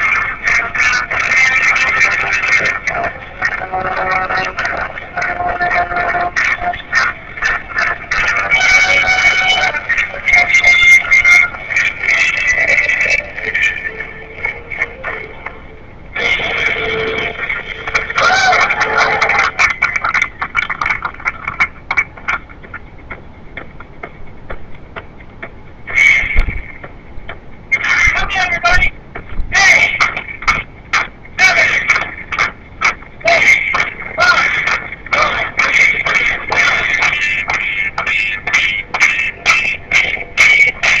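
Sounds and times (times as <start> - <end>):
voices through small speaker: 0.0 - 22.8, 25.9 - 41.0
tinny music through speaker: 0.0 - 41.0.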